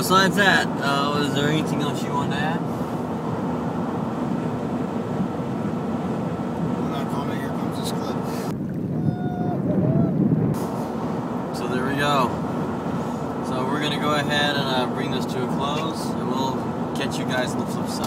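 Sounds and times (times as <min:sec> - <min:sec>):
low rumble on open water: 0:00.0 - 0:18.0
road noise inside truck cab: 0:00.0 - 0:18.0.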